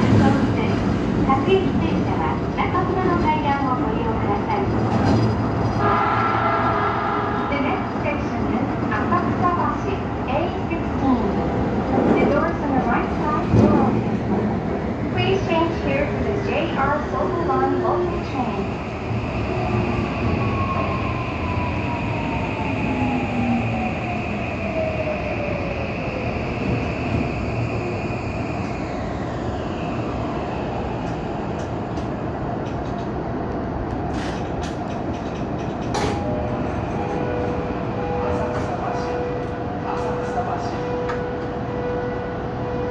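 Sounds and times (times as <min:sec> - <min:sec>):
subway train running in tunnel: 0:00.0 - 0:42.9.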